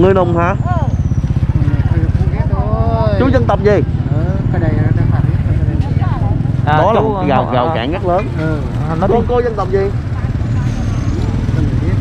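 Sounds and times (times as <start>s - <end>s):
engine idling: 0.0s - 12.0s
voices: 0.0s - 12.0s.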